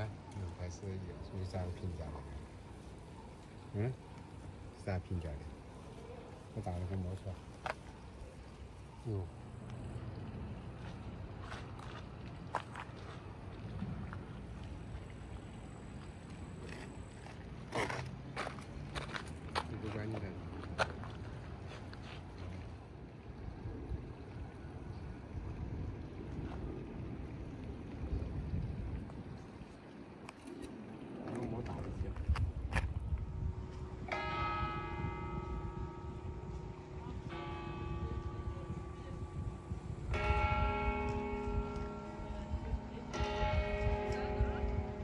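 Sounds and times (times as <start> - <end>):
people talking quietly: 0.0 - 11.1, 36.6 - 45.0
church bell ringing: 33.3 - 45.0.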